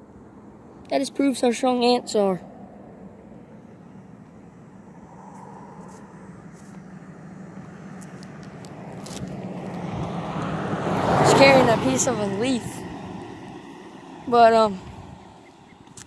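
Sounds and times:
road vehicle passing: 0.0s - 16.0s.

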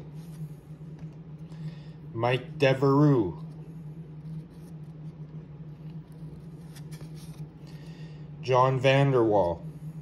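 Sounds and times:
low hum: 0.0s - 10.0s
cards rustling and flicking: 4.2s - 7.8s.

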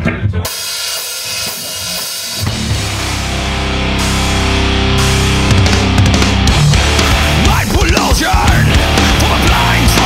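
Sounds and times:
drum kit with crashing cymbals: 0.4s - 10.0s
electric guitars and bass: 2.4s - 10.0s.

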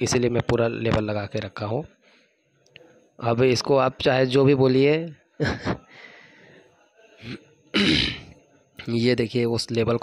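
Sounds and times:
man clearing his throat: 7.2s - 8.4s.

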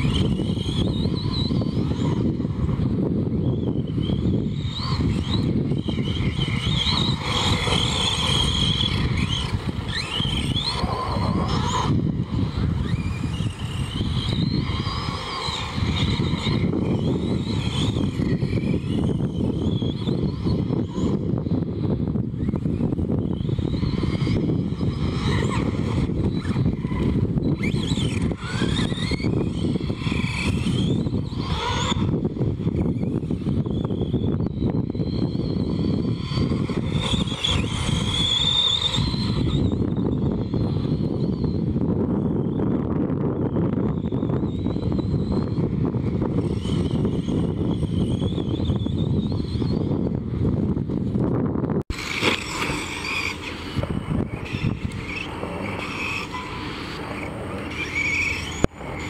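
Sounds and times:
rc truck motor whining: 0.0s - 59.0s.

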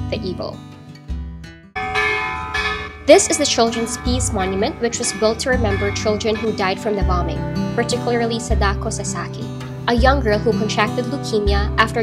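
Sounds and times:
low background music: 0.0s - 12.0s
bell ringing: 1.8s - 8.2s.

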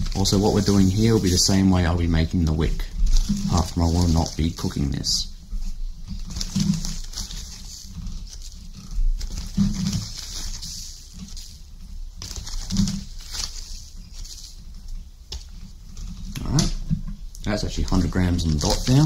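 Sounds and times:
plastic bag crinkling: 0.0s - 19.0s.

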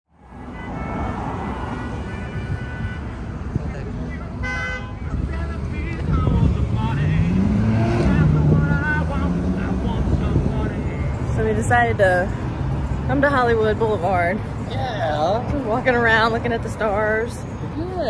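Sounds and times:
passing cars rumbling: 0.1s - 18.0s
car horn toot: 0.3s - 3.4s, 4.2s - 5.6s
vehicle engine rising in pitch: 5.2s - 10.9s.

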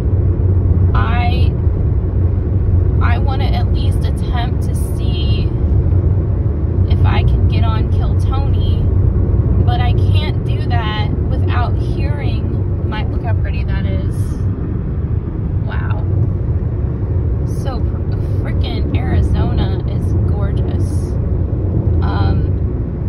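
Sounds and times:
car road noise rumble: 0.0s - 23.0s
person speaking: 22.0s - 22.6s.

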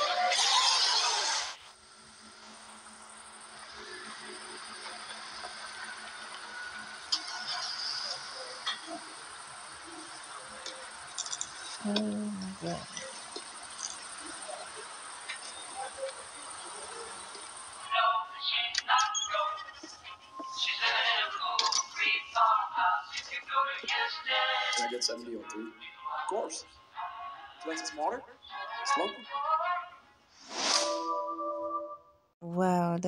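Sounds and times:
faint hum: 0.0s - 30.3s
high wordless singing: 17.8s - 30.1s.

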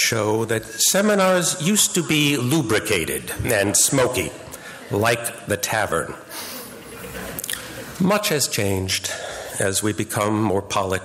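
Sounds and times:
man breathing: 4.5s - 4.9s, 9.1s - 9.6s
wet mouth clicks: 7.4s - 7.7s.

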